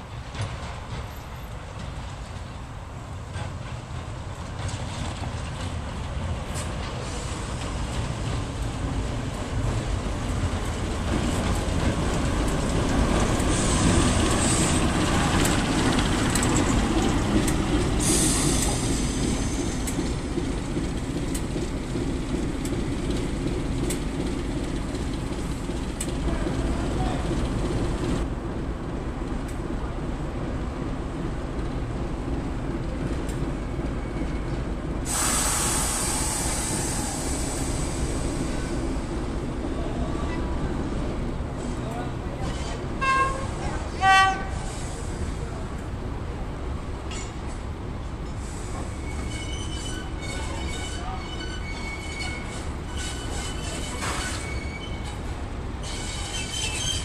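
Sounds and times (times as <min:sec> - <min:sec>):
distant diesel locomotive: 0:00.0 - 0:57.0
diesel locomotive engine running: 0:02.9 - 0:46.1
brief hiss: 0:35.1 - 0:38.8.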